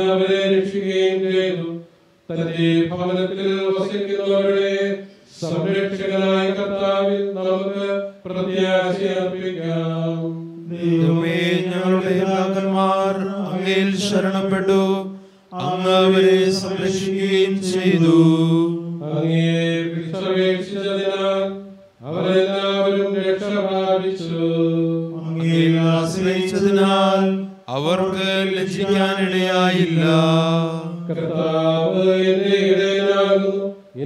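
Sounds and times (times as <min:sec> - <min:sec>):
man chanting: 0:00.0 - 0:34.0
breaths between phrases: 0:15.1 - 0:15.6.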